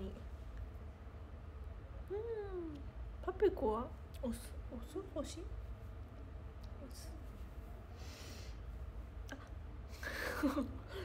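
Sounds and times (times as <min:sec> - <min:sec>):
low steady room hum: 0:00.0 - 0:11.0.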